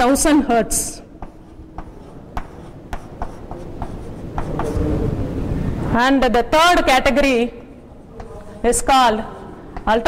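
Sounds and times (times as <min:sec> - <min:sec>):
chalk tapping on blackboard: 0:01.2 - 0:04.9, 0:09.7 - 0:10.0.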